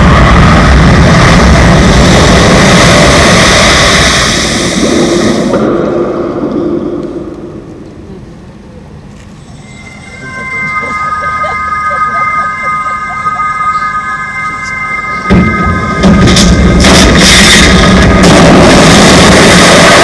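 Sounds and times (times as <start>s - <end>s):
dense rushing rumble: 0.0s - 8.0s, 14.0s - 20.0s
steady high notes: 9.4s - 20.0s.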